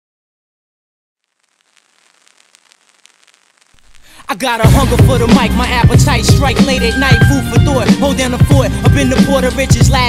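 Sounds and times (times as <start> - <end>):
vinyl record crackle and clicks: 1.2 - 5.2
hip hop bass: 4.3 - 10.0.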